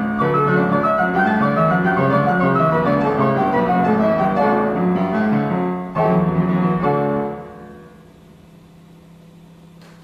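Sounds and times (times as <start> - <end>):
player piano playing: 0.0 - 8.0.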